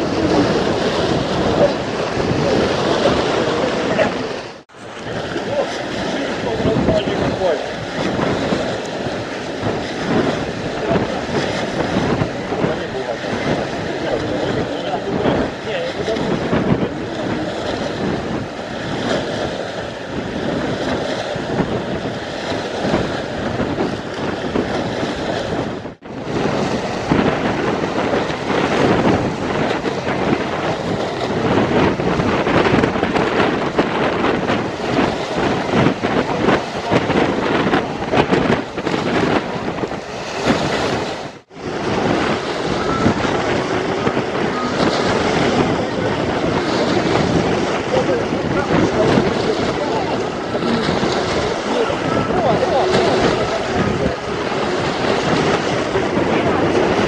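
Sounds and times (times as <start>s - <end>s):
waves splashing against embankment: 0.0s - 57.0s
wind buffeting microphone: 0.0s - 57.0s.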